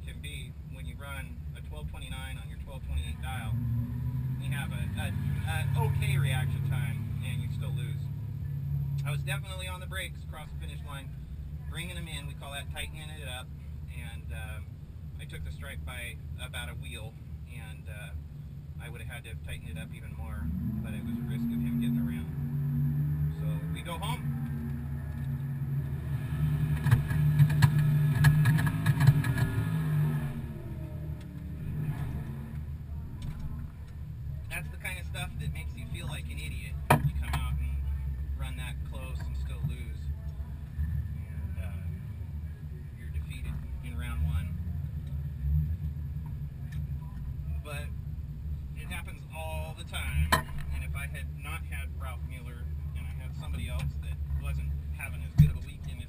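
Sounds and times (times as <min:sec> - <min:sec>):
engine revving: 0:02.0 - 0:09.4, 0:19.8 - 0:40.1
car engine idling: 0:04.4 - 0:56.0.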